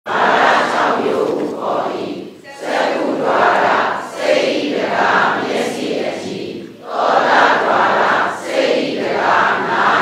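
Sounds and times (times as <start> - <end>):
group reciting in unison: 0.1 - 10.0.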